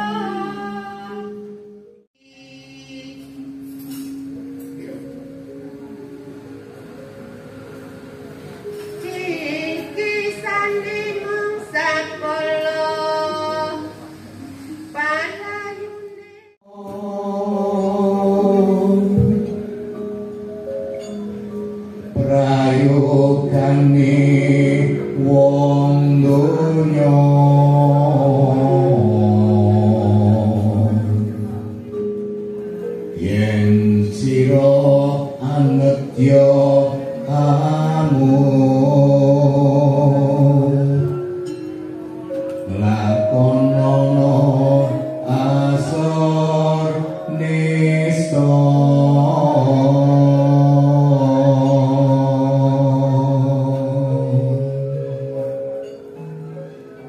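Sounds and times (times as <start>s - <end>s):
man singing into a microphone: 16.6s - 20.0s, 22.1s - 31.9s, 33.1s - 41.4s, 42.6s - 55.8s.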